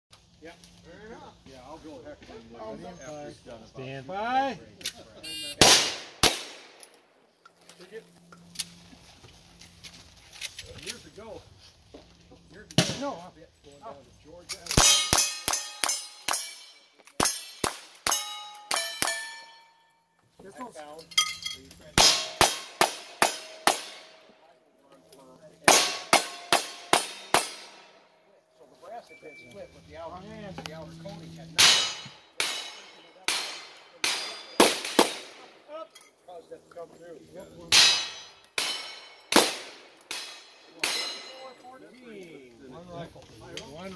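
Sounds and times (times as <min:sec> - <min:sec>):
gunshots: 0:05.5 - 0:06.9, 0:22.0 - 0:24.2, 0:25.6 - 0:27.9, 0:31.6 - 0:35.6, 0:37.7 - 0:41.4
steel target clanging: 0:14.6 - 0:20.0, 0:20.9 - 0:24.2, 0:31.5 - 0:35.1, 0:37.5 - 0:39.5, 0:40.1 - 0:41.6.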